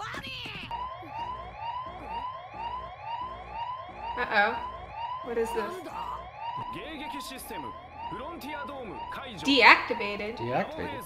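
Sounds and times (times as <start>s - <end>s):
electronic alarm siren sweep: 0.4s - 11.0s
low pulsing hum: 0.7s - 6.2s.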